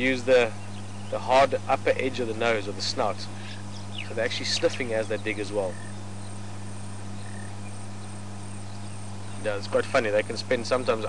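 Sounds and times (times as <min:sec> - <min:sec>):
insects chirping: 0:00.0 - 0:11.0
steady low hum: 0:00.0 - 0:11.0.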